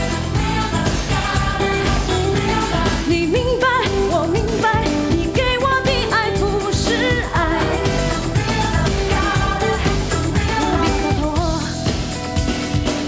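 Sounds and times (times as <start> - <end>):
backing track with steady beat: 0.0 - 13.0
woman singing with vibrato: 0.2 - 11.9.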